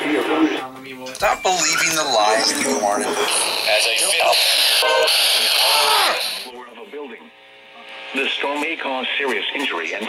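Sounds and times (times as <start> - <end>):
loud radio static hiss: 0.0 - 6.5, 7.9 - 10.0
faint broadcast voice: 0.0 - 10.0.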